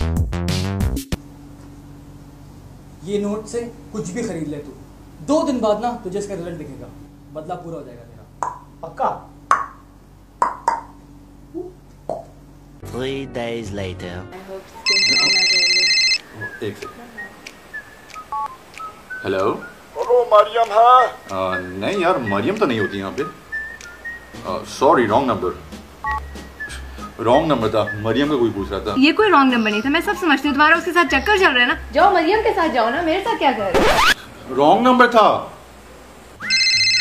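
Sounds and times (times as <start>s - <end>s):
two-tone phone beep: 14.9s - 16.2s, 26.0s - 26.3s, 36.5s - 37.0s.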